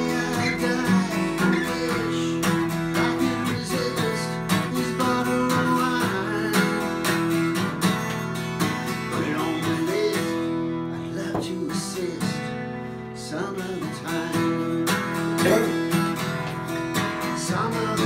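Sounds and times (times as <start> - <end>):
twelve-string acoustic guitar strumming: 0.0 - 18.0.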